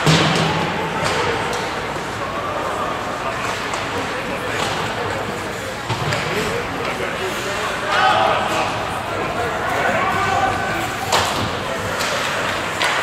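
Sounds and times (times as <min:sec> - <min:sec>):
clacks of sticks and puck: 0:00.0 - 0:02.2, 0:02.9 - 0:13.0
people shouting: 0:07.9 - 0:11.2.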